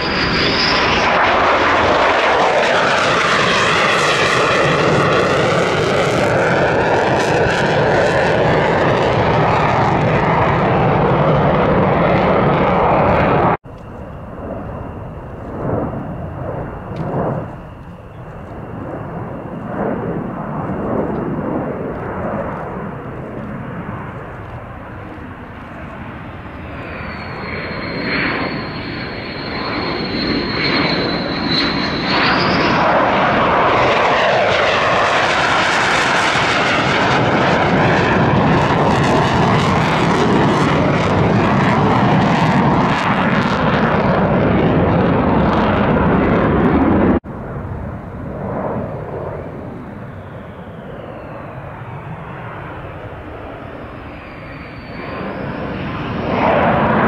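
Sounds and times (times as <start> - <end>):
jet engine roar and whine: 0.0 - 57.0.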